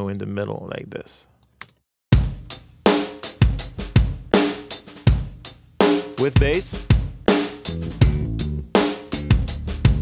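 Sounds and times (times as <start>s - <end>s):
drum kit playing a beat: 2.1s - 10.0s.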